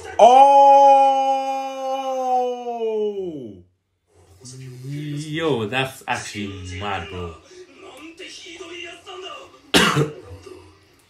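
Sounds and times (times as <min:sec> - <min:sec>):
man coughing: 0:09.7 - 0:10.2.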